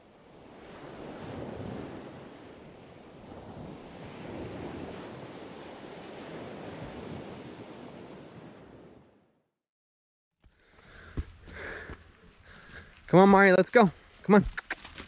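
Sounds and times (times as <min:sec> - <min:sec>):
surf washing onto shore: 0:00.0 - 0:09.1
wind: 0:00.0 - 0:09.5, 0:10.4 - 0:15.0.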